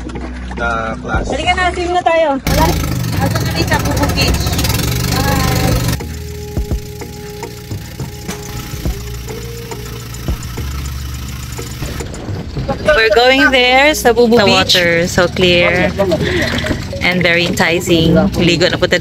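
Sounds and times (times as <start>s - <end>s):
boat motor running: 0.0s - 19.0s.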